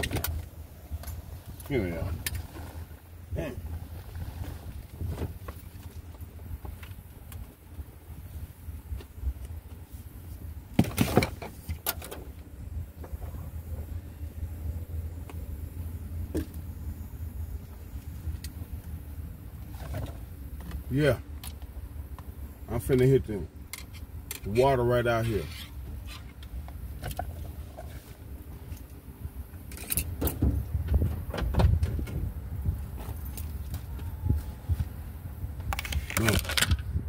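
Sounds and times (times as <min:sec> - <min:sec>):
steady low rumble: 0:00.0 - 0:37.0.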